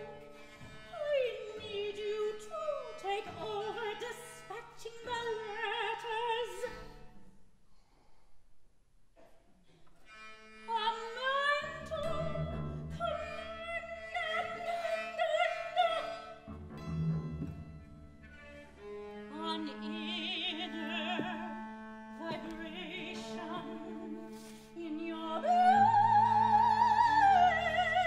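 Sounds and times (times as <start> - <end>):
chamber ensemble strings: 11.2 - 28.0.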